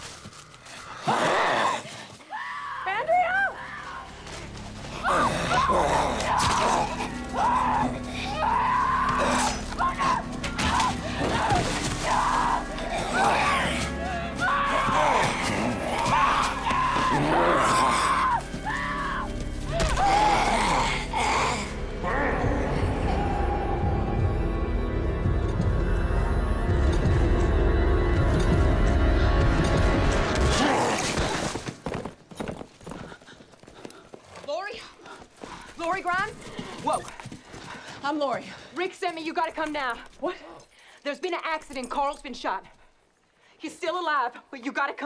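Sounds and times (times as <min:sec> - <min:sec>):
tense dramatic score music: 0:00.0 - 0:31.4
woman screaming: 0:05.1 - 0:21.7
horse hooves clopping: 0:31.3 - 0:40.6.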